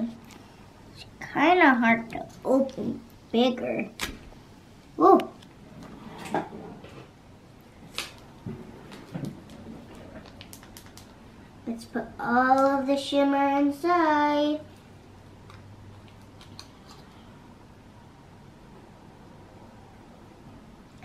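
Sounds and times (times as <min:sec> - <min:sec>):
foil packet crinkling: 0:10.2 - 0:11.2.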